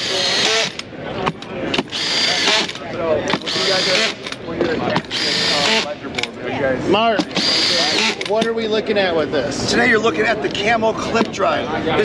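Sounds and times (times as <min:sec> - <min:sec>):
cordless drill whirring: 0:00.0 - 0:04.4, 0:05.0 - 0:06.0, 0:07.2 - 0:08.4
crowd chatter: 0:00.0 - 0:12.0.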